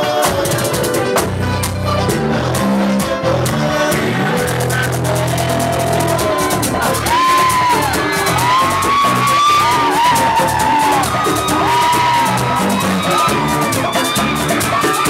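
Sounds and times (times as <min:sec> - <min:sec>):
live band playing: 0:00.0 - 0:15.0
scraped percussion rhythm: 0:00.0 - 0:15.0.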